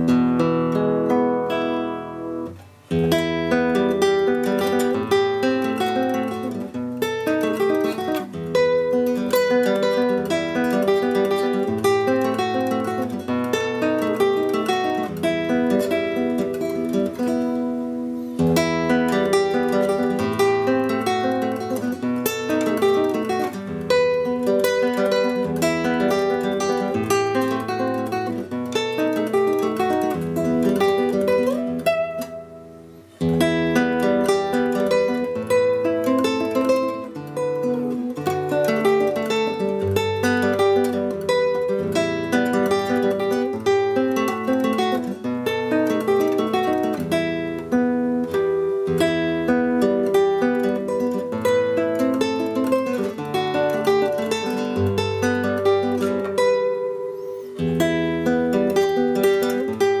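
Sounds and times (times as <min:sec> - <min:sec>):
classical guitar played fingerstyle: 0:00.0 - 1:00.0.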